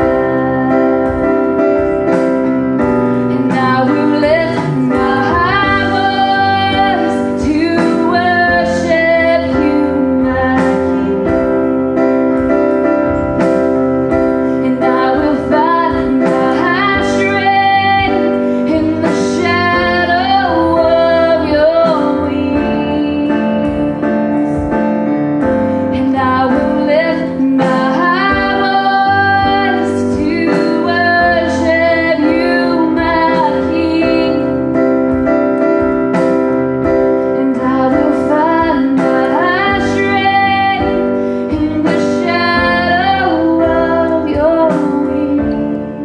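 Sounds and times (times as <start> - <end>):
woman singing into microphone: 0.0 - 13.4, 14.1 - 35.8, 36.8 - 46.0
drums: 0.0 - 46.0
electric keyboard: 0.0 - 46.0.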